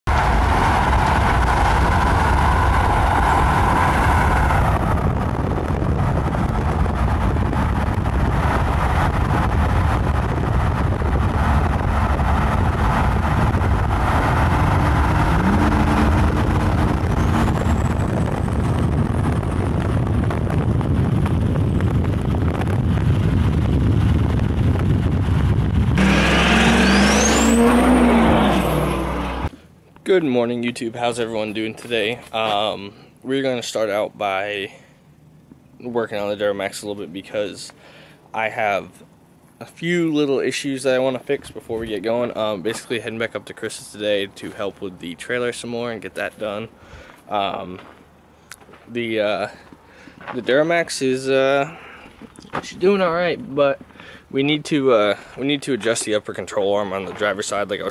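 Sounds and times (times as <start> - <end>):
diesel engine and road noise: 0.0 - 57.9
high turbo whistle: 14.1 - 18.5, 26.0 - 29.5.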